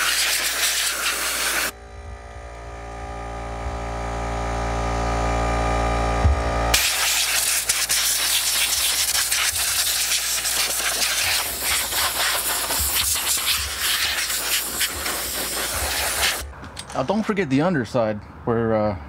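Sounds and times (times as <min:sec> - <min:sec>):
compressed air blow gun hissing: 0:00.0 - 0:01.7, 0:06.8 - 0:16.5
motor hum: 0:01.3 - 0:16.8.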